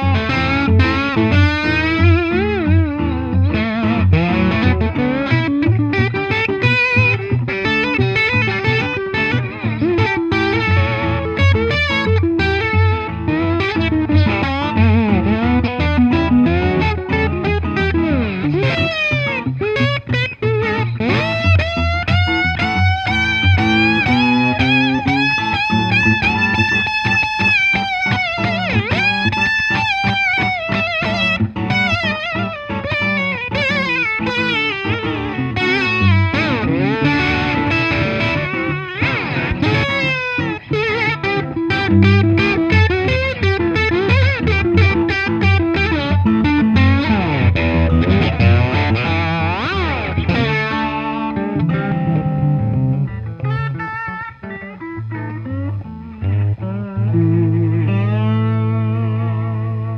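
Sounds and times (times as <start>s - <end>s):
electric guitar lead bent notes: 0.0s - 59.9s
second electric guitar low notes: 0.0s - 59.9s.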